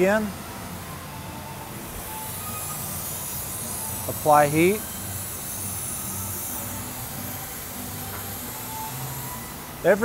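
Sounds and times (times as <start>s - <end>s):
torch flame hissing: 1.8s - 10.0s.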